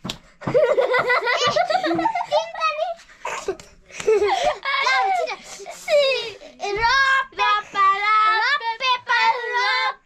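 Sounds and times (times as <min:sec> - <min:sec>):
children singing a rhyme: 0:06.6 - 0:10.0.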